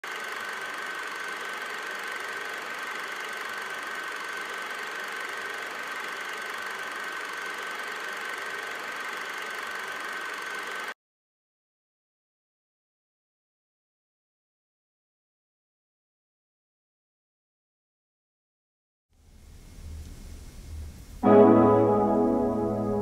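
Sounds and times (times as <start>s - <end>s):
static hiss: 19.2s - 21.3s
high whine: 19.6s - 23.0s.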